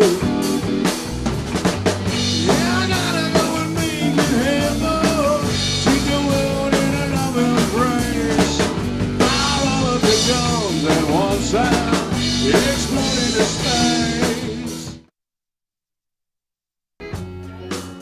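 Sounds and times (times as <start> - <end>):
rock band playing: 0.0 - 15.1, 17.0 - 18.0.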